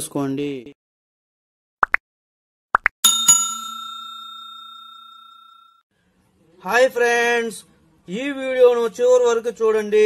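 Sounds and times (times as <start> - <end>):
bright bell ding: 3.0 - 5.8.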